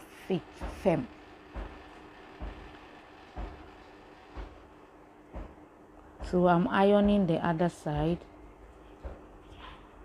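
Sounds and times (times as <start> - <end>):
steam iron thumping on fabric: 0.3 - 8.3.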